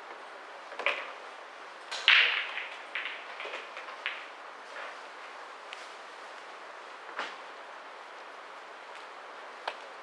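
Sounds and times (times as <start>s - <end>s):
pool balls clicking: 0.7s - 1.2s, 1.9s - 4.4s.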